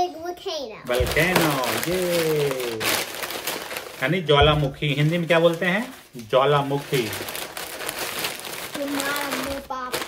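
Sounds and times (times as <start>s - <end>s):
paper crumpling: 0.9s - 10.0s.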